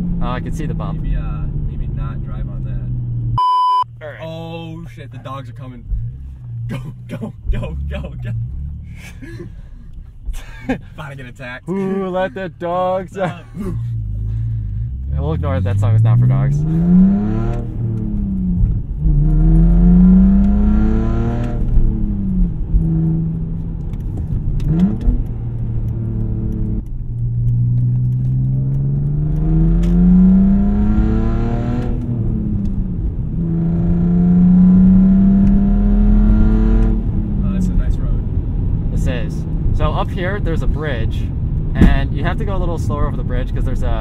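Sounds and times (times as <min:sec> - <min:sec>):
car exhaust note while driving: 0:05.0 - 0:44.0.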